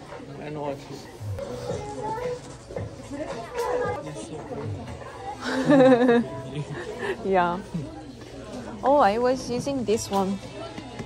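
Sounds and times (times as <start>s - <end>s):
chatter of people: 0.0s - 11.0s.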